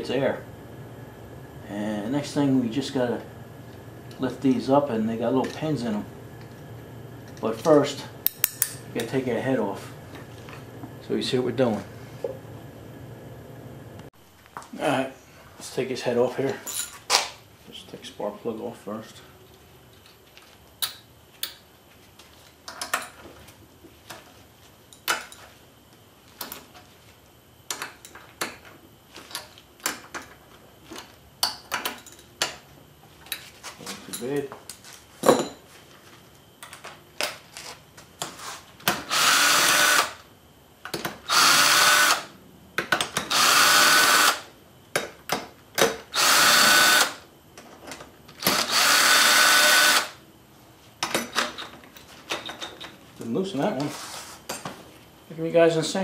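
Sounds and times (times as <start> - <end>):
cordless drill spinning: 39.1 - 40.2, 41.3 - 42.3, 43.3 - 44.4, 46.1 - 47.2, 48.5 - 50.1.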